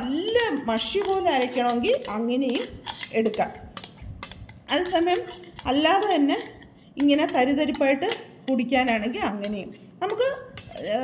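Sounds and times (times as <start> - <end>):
woman speaking: 0.0 - 3.8, 4.6 - 11.0
metal spoon scraping blender jar: 0.0 - 11.0.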